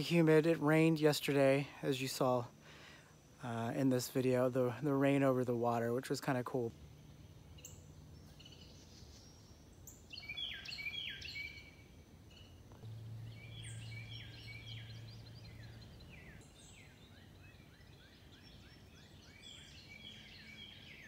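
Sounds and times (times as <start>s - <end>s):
songbirds whistling downward notes: 7.2s - 21.0s.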